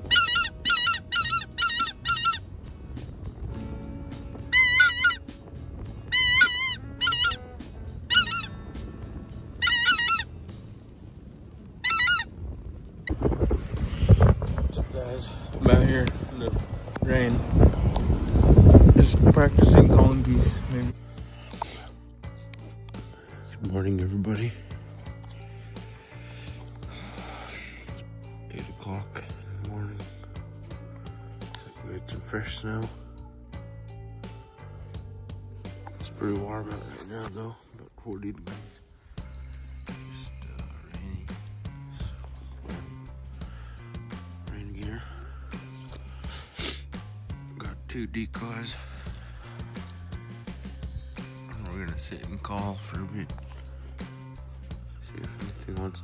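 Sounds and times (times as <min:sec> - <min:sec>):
geese honking: 0:00.0 - 0:02.6, 0:04.1 - 0:10.4, 0:11.8 - 0:12.4
background music: 0:00.0 - 0:12.4, 0:13.0 - 0:56.0.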